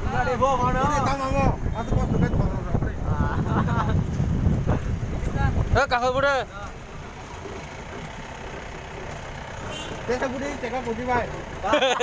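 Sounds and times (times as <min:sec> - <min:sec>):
road noise: 0:00.0 - 0:12.0
truck engine rumble: 0:00.0 - 0:12.0.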